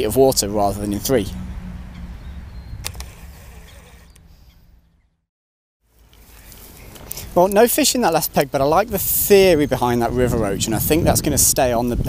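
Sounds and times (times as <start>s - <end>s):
wind rumbling on microphone: 0.0s - 5.1s, 8.5s - 12.0s
sharp click: 2.8s - 3.3s.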